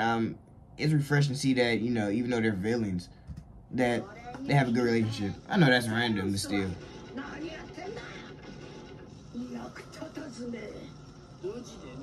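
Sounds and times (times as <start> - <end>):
character speaking: 3.8 - 6.8.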